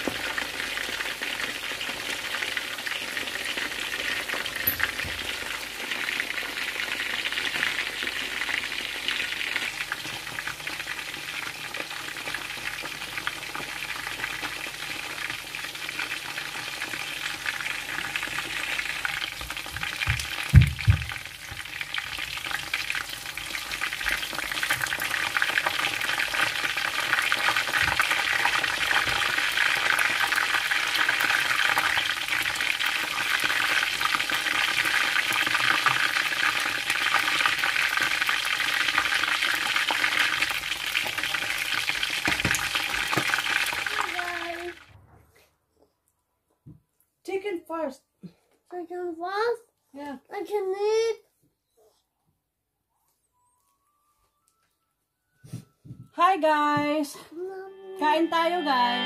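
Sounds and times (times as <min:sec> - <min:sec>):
chicken frying in hot oil: 0:00.0 - 0:45.0
low thump: 0:20.1 - 0:21.2.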